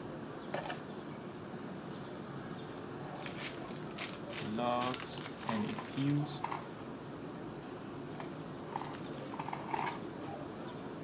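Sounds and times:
steady low hiss: 0:00.0 - 0:11.0.

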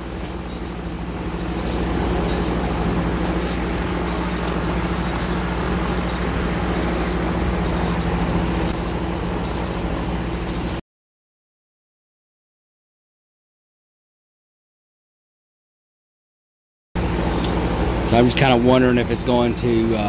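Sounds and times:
laser engraver mechanical hum: 0:00.0 - 0:10.8, 0:17.0 - 0:20.0.

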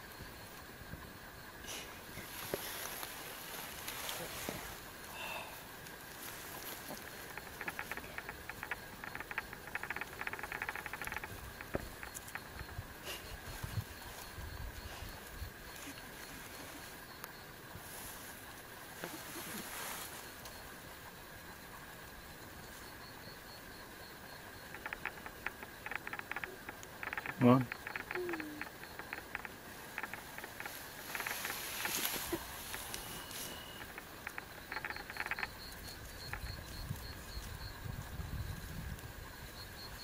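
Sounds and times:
insect trill: 0:00.0 - 0:40.0
dry grass rustling: 0:01.7 - 0:21.0, 0:24.5 - 0:39.2.

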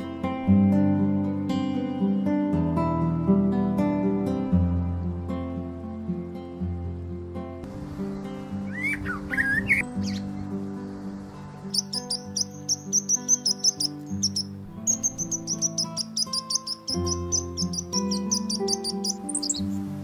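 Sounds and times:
soft background music: 0:00.0 - 0:20.0
birds chirping: 0:07.9 - 0:10.6, 0:11.5 - 0:20.0
sliding whistled bird calls: 0:08.6 - 0:10.4, 0:11.7 - 0:19.8.

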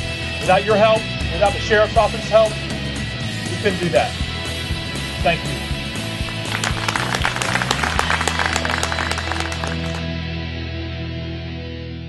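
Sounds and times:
background music: 0:00.0 - 0:12.0
crowd applauding: 0:06.0 - 0:10.1.

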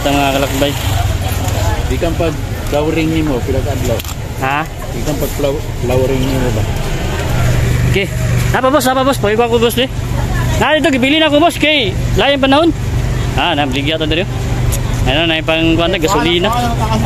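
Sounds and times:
low vehicle hum: 0:00.0 - 0:17.0
people talking: 0:00.0 - 0:17.0.

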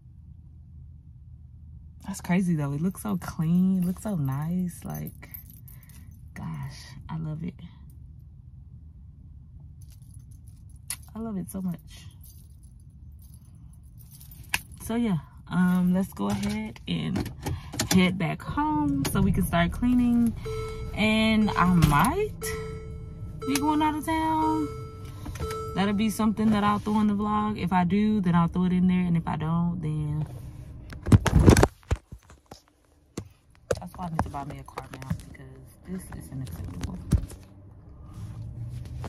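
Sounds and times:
low steady rumble: 0:00.0 - 0:39.0.

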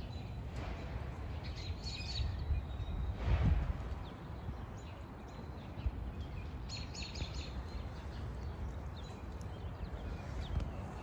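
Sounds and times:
small birds chirping: 0:00.0 - 0:03.2, 0:03.8 - 0:11.0.

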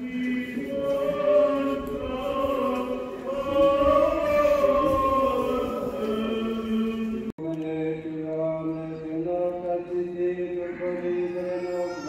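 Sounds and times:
voices chanting in long notes: 0:00.0 - 0:07.3.

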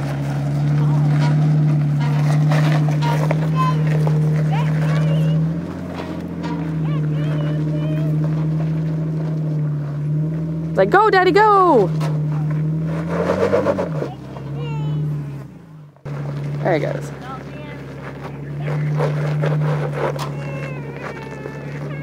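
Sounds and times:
car engine at low revs: 0:00.0 - 0:22.0
faint voices: 0:00.7 - 0:01.5, 0:06.3 - 0:08.5, 0:16.6 - 0:22.0.

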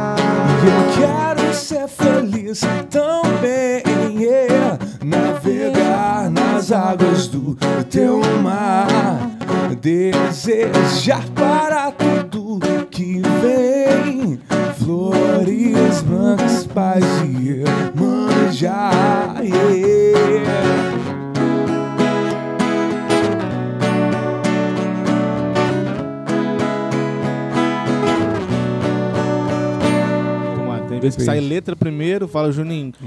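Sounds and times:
man singing: 0:00.0 - 0:21.1
acoustic guitars strumming chords: 0:00.0 - 0:32.3.

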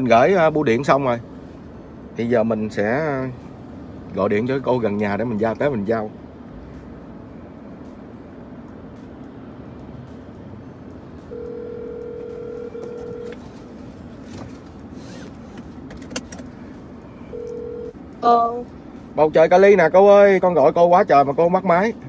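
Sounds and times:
telephone ringback tone: 0:11.3 - 0:13.4, 0:17.3 - 0:18.0.

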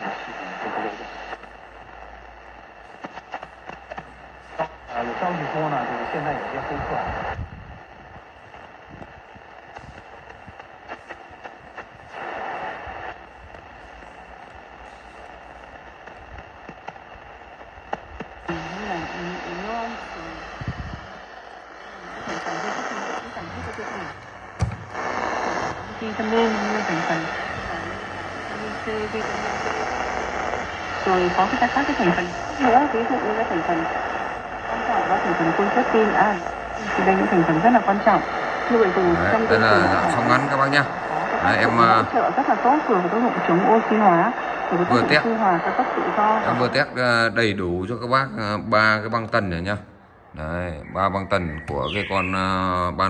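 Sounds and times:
broadcast voice on radio: 0:00.0 - 0:01.5, 0:03.0 - 0:07.4, 0:18.2 - 0:24.3, 0:24.9 - 0:53.0
radio static hiss and crackles: 0:00.0 - 0:53.0.

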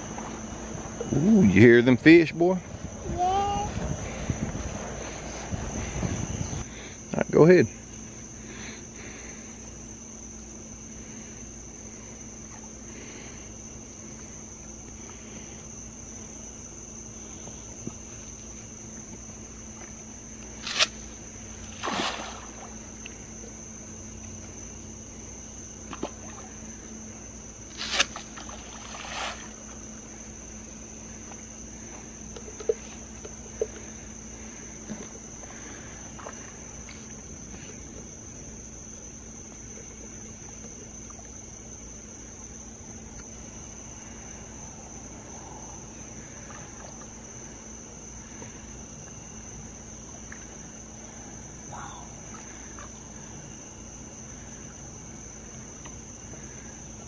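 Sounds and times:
insect chorus: 0:00.0 - 0:57.0
fish splashing at water surface: 0:21.6 - 0:22.9, 0:27.8 - 0:29.8.

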